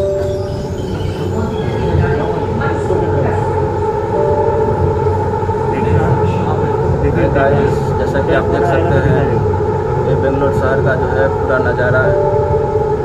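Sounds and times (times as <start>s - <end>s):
metro train rumble: 0.0s - 13.0s.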